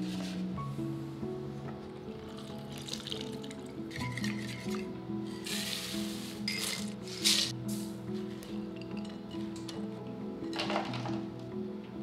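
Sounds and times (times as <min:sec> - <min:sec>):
light repeating background music: 0:00.0 - 0:12.0.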